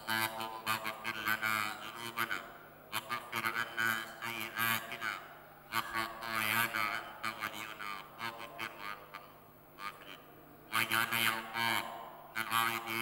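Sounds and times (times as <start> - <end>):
man chanting melodically: 0.0 - 13.0.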